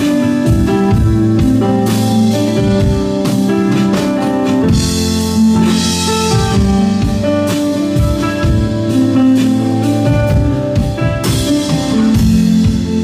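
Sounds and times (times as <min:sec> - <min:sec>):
drum kit: 0:00.0 - 0:13.0
electronic keyboard chords: 0:00.0 - 0:13.0.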